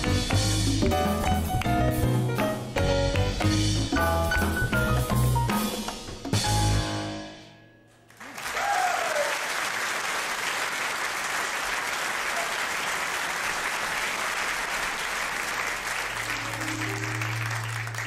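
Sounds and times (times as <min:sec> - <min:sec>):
audience applauding: 0:08.1 - 0:18.0.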